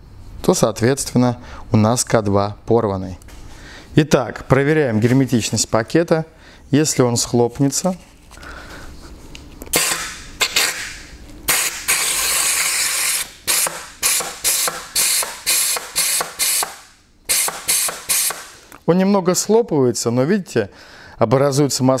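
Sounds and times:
compressed air blow gun hissing: 0:11.5 - 0:18.6.

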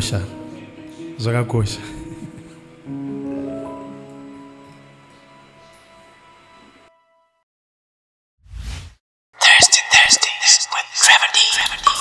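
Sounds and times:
person whispering into microphone: 0:09.4 - 0:12.0.

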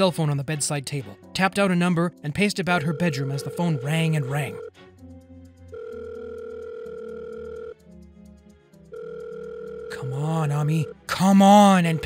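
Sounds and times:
soft background music: 0:00.0 - 0:12.0
telephone ringback tone: 0:02.8 - 0:04.7, 0:05.7 - 0:07.8, 0:08.9 - 0:11.0.

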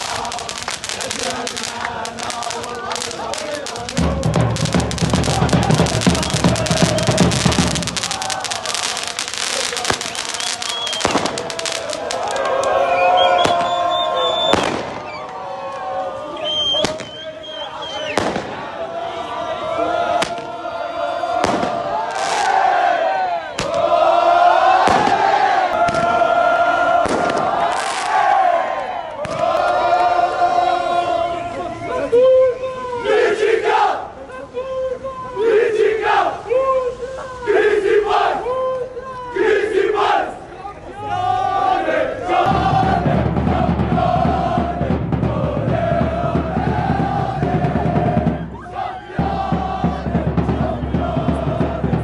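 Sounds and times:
crowd of fans shouting: 0:00.0 - 0:52.0
sharp firework bang: 0:11.0 - 0:11.8, 0:14.5 - 0:15.1, 0:18.2 - 0:18.6, 0:21.4 - 0:22.4, 0:24.8 - 0:25.2, 0:27.0 - 0:28.0.

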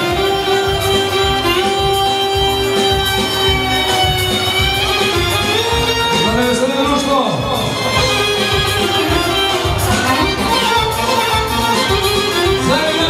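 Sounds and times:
live band playing dance music: 0:00.0 - 0:13.0
steady driving beat: 0:00.0 - 0:13.0
violin-like lead melody: 0:00.0 - 0:13.0.

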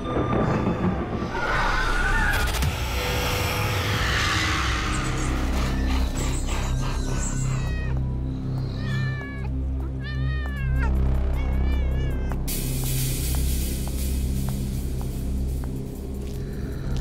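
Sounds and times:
background music with bass drone: 0:00.0 - 0:17.0
cat meowing: 0:08.7 - 0:12.4.

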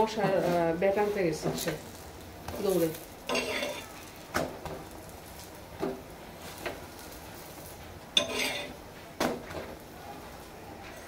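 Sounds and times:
metal spatula scraping a griddle: 0:00.0 - 0:08.8.

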